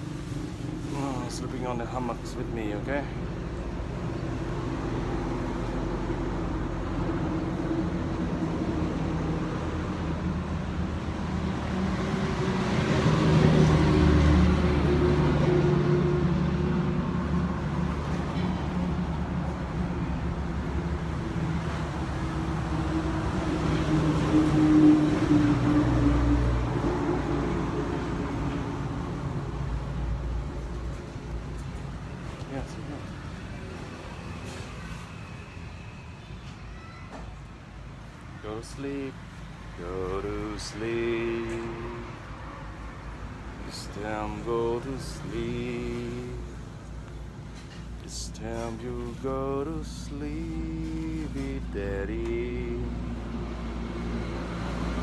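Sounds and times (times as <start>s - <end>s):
motor vehicle engine hum: 38.4s - 55.0s.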